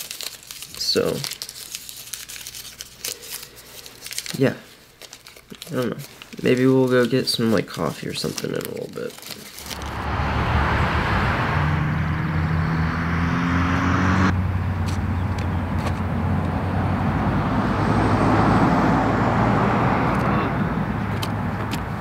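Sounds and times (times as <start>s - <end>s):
low engine hum: 9.6s - 22.0s
road traffic noise: 9.6s - 22.0s.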